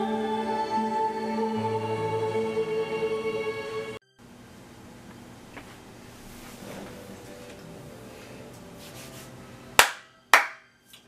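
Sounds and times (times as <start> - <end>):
sharp hand claps: 9.8 - 11.0.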